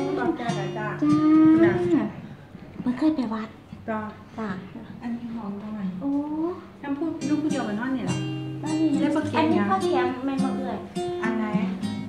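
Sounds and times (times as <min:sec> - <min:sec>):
woman calling in sing-song: 0:00.0 - 0:02.2.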